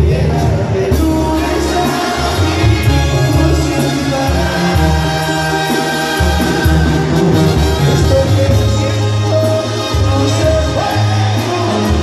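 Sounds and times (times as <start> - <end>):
man singing: 0.0 - 12.0
tuba bass line: 0.0 - 12.0
trumpets and trombones chords: 0.1 - 12.0.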